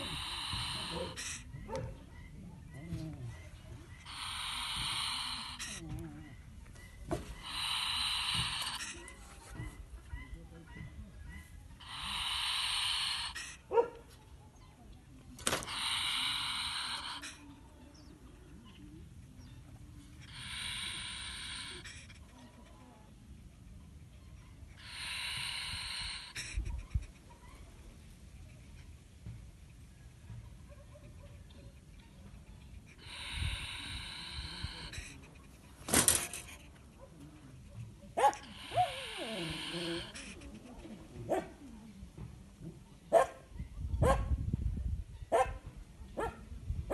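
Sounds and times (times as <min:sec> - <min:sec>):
polecat hissing: 0:00.0 - 0:01.6, 0:03.3 - 0:09.6, 0:11.8 - 0:13.7, 0:15.4 - 0:18.1, 0:20.0 - 0:22.4, 0:24.8 - 0:27.1, 0:32.7 - 0:36.9, 0:37.5 - 0:41.2.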